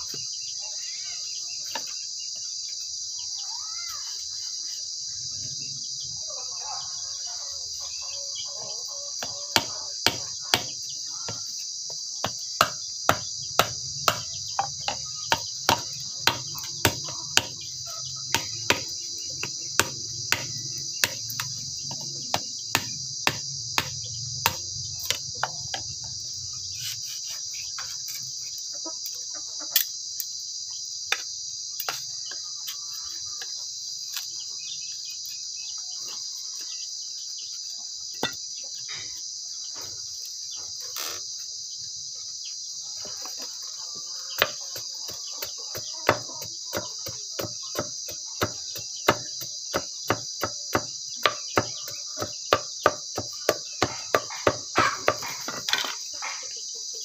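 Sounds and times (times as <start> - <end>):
insects droning: 0.0 - 57.0
knife knocking on bamboo: 12.2 - 17.6, 45.8 - 55.9.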